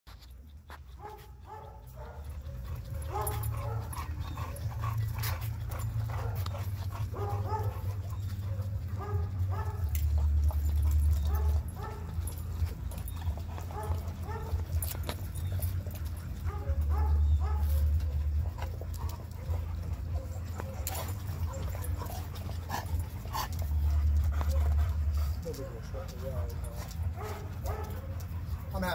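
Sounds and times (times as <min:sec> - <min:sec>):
dogs whining and yipping: 0:00.1 - 0:28.9.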